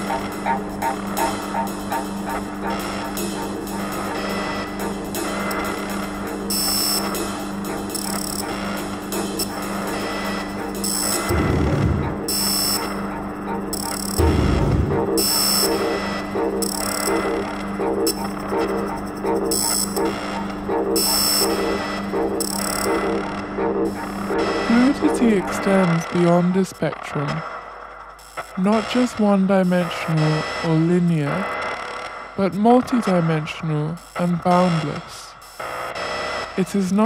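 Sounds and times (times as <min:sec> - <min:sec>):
grainy electronic texture: 0:00.0 - 0:37.0
low electronic drone: 0:00.0 - 0:37.0.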